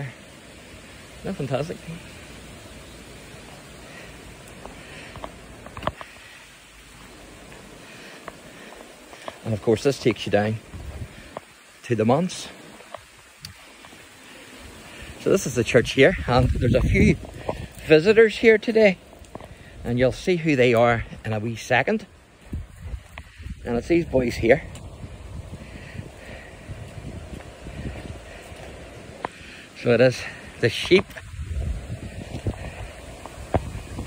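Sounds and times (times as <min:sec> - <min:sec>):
wind buffeting microphone: 0:10.1 - 0:11.8, 0:12.7 - 0:18.3, 0:22.0 - 0:29.6, 0:30.2 - 0:34.0.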